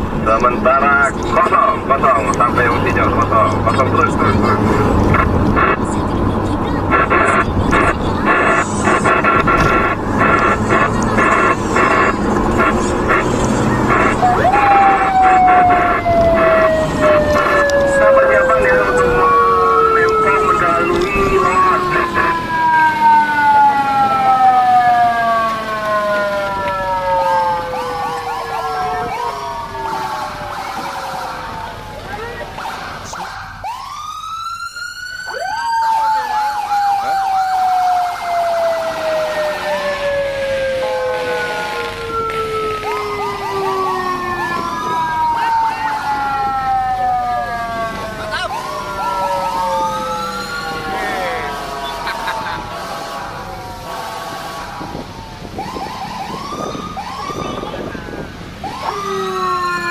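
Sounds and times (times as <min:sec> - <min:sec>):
siren-like sliding tones: 0:06.7 - 0:59.9.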